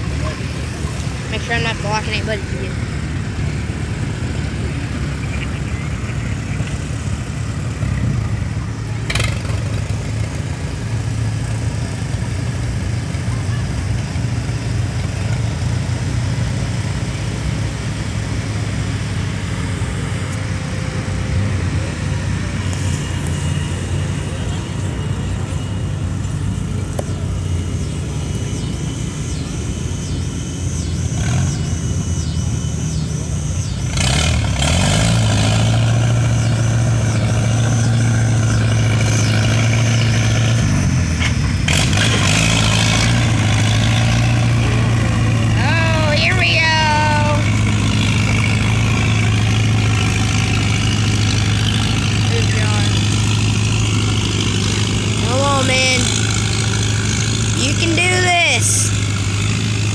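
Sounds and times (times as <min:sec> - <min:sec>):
tractor engine under load: 0:00.0 - 0:59.9.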